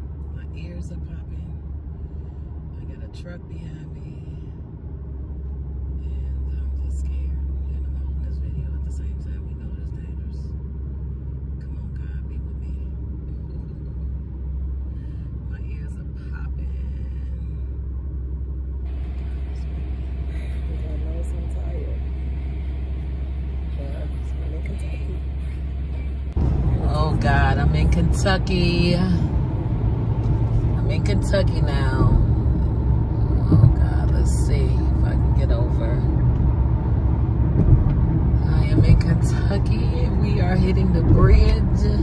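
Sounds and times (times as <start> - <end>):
car road and engine rumble: 0.0 - 42.0.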